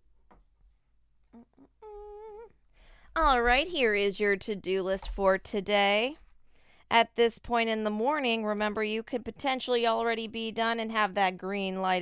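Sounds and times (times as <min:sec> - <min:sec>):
woman humming: 0:01.3 - 0:02.6.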